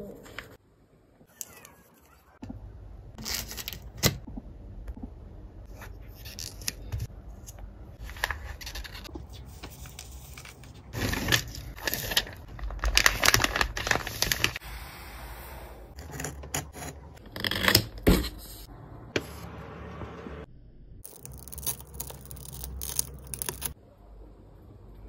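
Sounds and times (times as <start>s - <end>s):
wrapping paper crinkling: 8.0s - 14.6s, 21.1s - 23.8s.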